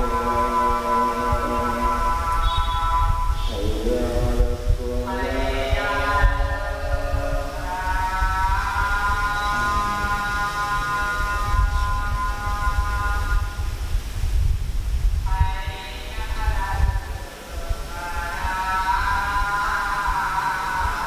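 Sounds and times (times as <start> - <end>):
man singing or chanting: 0.0 - 13.7, 15.3 - 21.0.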